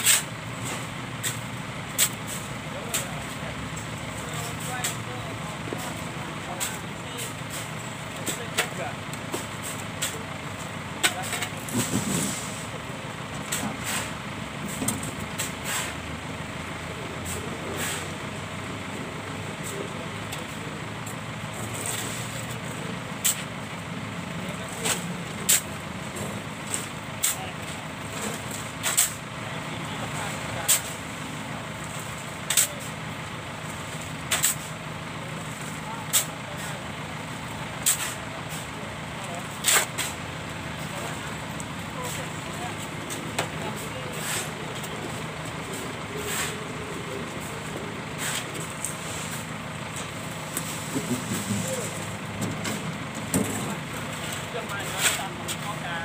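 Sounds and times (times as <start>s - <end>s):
shovels scraping sand: 0.0s - 0.3s, 11.0s - 12.6s, 13.5s - 14.2s, 15.4s - 16.0s, 17.2s - 18.2s, 24.8s - 25.8s, 28.2s - 29.2s, 30.4s - 31.0s, 32.4s - 32.9s, 34.3s - 34.7s, 37.8s - 38.7s, 39.5s - 40.2s, 43.0s - 44.9s, 45.7s - 49.5s, 54.2s - 55.6s
wheelbarrow clatter: 11.0s - 12.6s.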